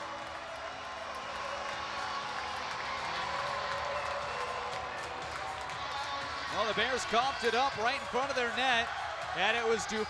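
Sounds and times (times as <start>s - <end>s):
crowd cheering and applauding: 0.0s - 10.0s.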